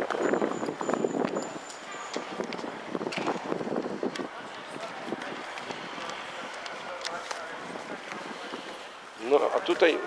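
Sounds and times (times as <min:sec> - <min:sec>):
wind on microphone: 0:00.0 - 0:06.0
people talking: 0:04.1 - 0:10.0.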